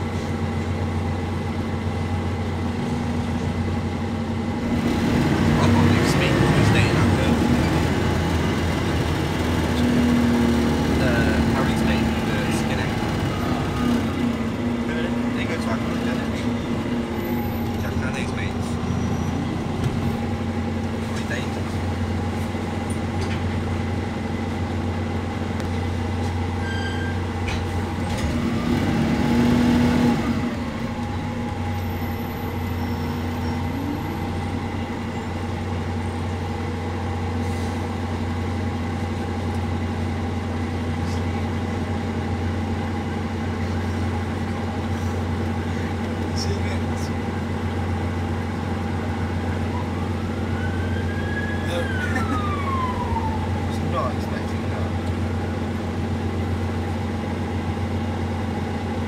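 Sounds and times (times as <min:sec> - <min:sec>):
bus engine drone: 0:00.0 - 0:59.0.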